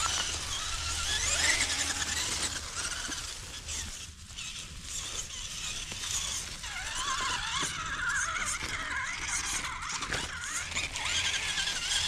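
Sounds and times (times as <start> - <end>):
rc car motor whining: 0.0 - 12.0
tyres crunching on dry leaves: 0.0 - 12.0.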